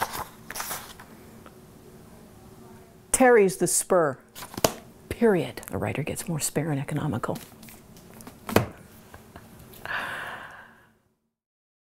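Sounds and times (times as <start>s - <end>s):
person exhaling breathily: 9.8s - 11.0s.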